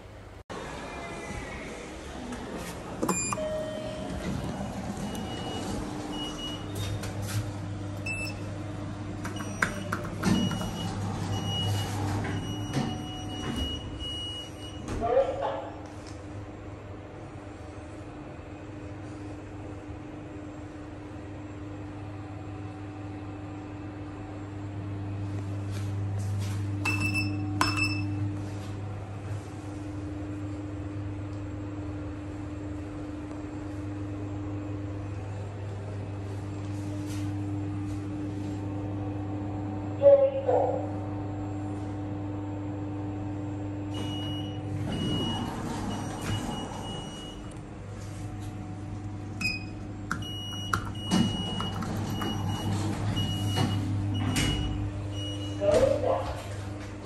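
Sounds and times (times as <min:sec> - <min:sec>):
lift machinery hum: 0:00.0 - 0:15.2, 0:15.8 - 0:57.0.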